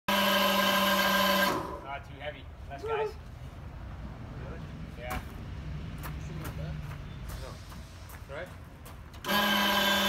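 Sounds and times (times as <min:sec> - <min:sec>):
lift motor whining: 0:00.1 - 0:01.8, 0:09.2 - 0:10.0.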